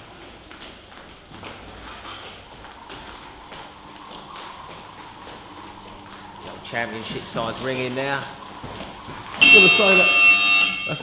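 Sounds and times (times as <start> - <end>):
skipping rope slapping wooden floor: 0.0 - 10.0.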